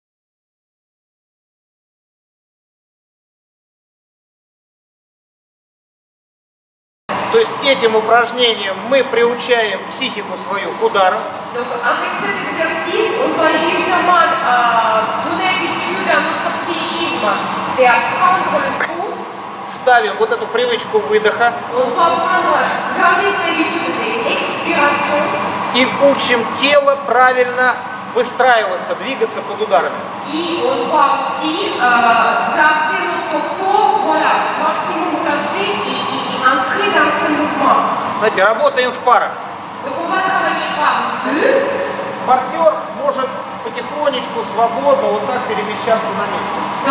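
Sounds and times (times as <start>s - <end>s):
woman talking into microphone: 11.5s - 19.2s, 21.7s - 25.4s, 30.2s - 38.0s, 39.8s - 41.6s.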